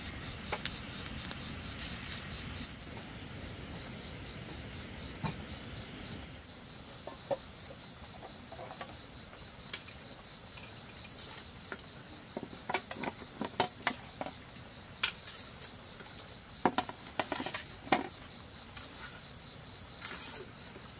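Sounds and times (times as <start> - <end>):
crickets chirring: 0.0 - 20.9.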